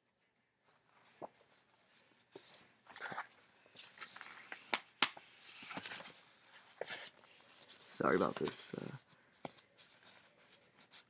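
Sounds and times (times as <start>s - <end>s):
paper and card rustling: 0.3s - 11.0s.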